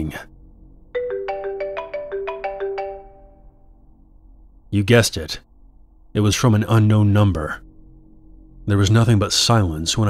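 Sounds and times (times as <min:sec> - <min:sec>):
phone ringtone melody: 0:01.0 - 0:03.6.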